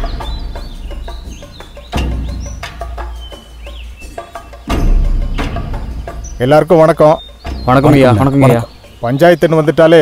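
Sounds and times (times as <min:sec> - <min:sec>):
high chirps: 0:00.0 - 0:10.0.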